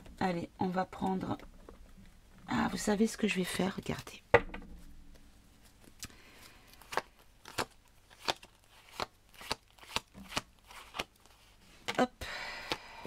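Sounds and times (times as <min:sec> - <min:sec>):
cards being shuffled: 0:05.6 - 0:12.0.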